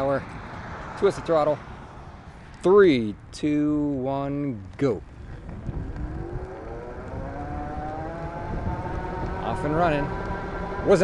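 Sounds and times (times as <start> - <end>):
low rumble: 4.6 - 11.0
electric motor whining: 5.5 - 11.0.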